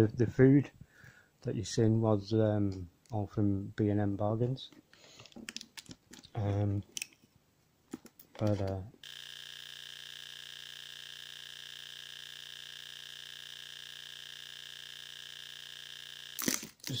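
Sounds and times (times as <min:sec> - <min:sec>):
steady multi-tone hum: 0:08.4 - 0:17.0.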